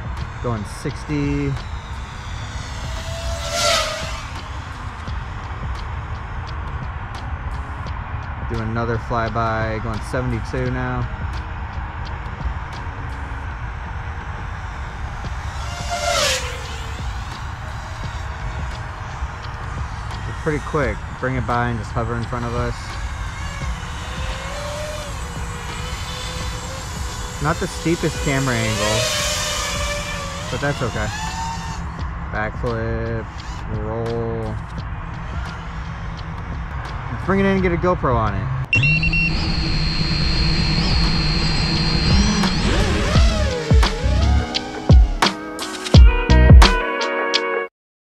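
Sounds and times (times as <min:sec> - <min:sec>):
drone motors whining: 0:00.0 - 0:46.1
low rumble: 0:29.8 - 0:44.6.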